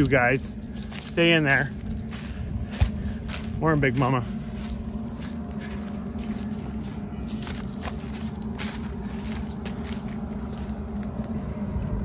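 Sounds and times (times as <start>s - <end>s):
footsteps crunching through corn stalks: 0.0s - 11.4s
steady low hum: 0.0s - 12.0s.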